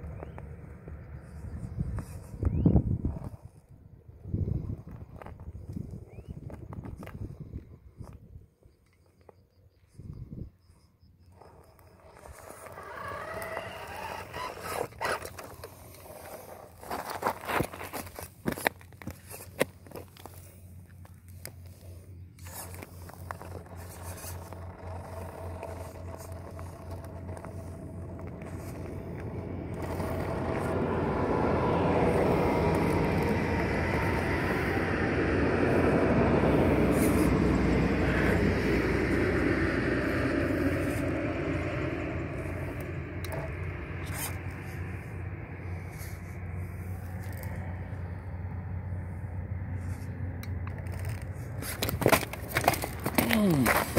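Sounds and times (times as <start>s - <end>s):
toy car drivetrain whirring: 11.4s - 18.2s, 22.4s - 34.6s
stones clattering under tyres: 11.4s - 31.2s, 50.4s - 53.9s
tyres scrabbling in gravel: 11.4s - 34.2s, 49.8s - 53.9s.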